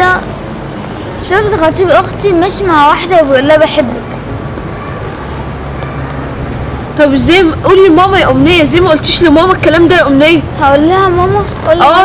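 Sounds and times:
low background rumble: 1.2s - 12.0s.

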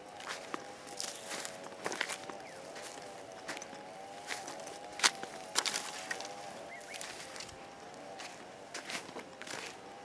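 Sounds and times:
faint drone: 0.0s - 10.0s
footsteps crunching dry stubble: 0.0s - 10.0s.

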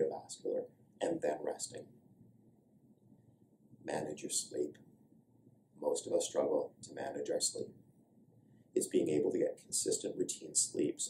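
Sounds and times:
man speaking: 0.0s - 1.8s, 3.9s - 4.8s, 5.8s - 7.7s, 8.8s - 11.0s.

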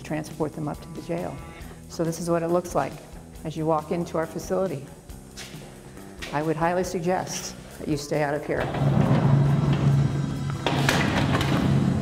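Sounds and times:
background music: 0.0s - 12.0s
metal mesh door clanking shut: 10.6s - 12.0s.

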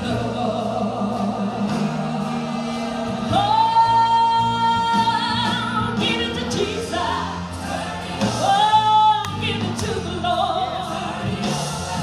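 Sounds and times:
gospel song with instruments: 0.0s - 12.0s.

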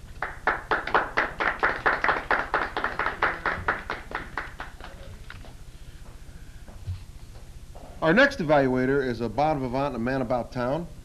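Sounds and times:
audience applauding: 0.2s - 5.2s.

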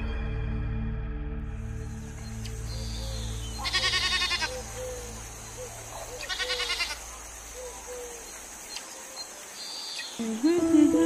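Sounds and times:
low musical drone: 0.0s - 5.9s
goat bleating: 3.6s - 4.6s, 6.3s - 7.0s.

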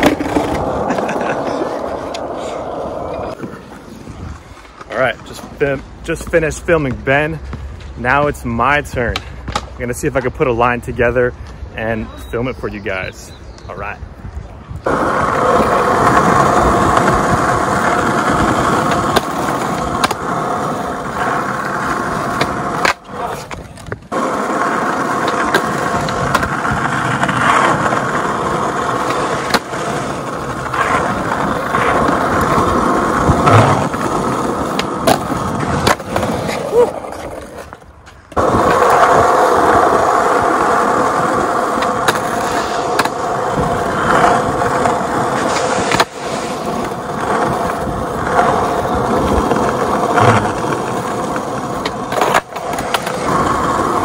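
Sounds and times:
skateboard clacks: 0.0s - 3.6s, 14.8s - 54.0s
skateboard wheels rolling on asphalt: 0.0s - 54.0s.

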